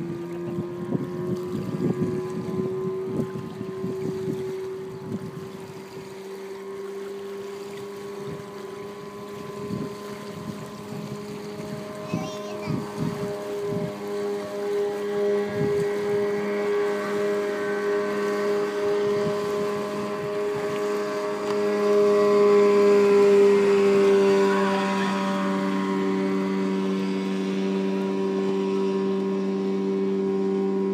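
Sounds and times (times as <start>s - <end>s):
motorboat engine droning: 0.0s - 30.9s.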